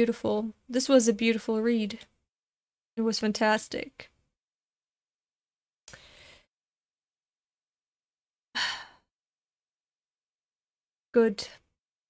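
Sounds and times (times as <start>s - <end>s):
woman's breathy sigh: 8.6s - 9.1s.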